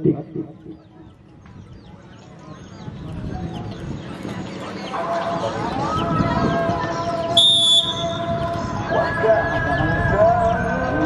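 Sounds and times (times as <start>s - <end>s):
outdoor crowd chatter: 0.0s - 11.0s
drawn-out high call: 7.3s - 8.3s
referee's whistle blast: 7.4s - 8.2s.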